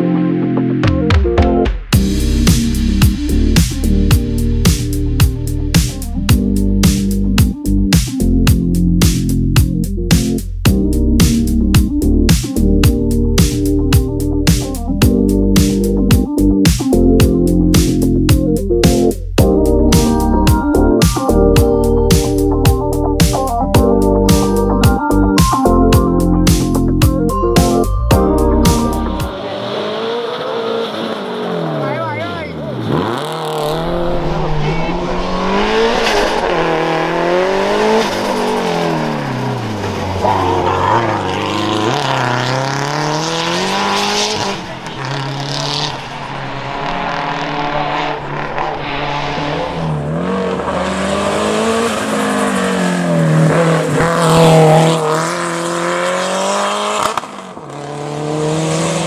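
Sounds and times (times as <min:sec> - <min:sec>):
car engine revving: 0:28.6 - 0:59.0.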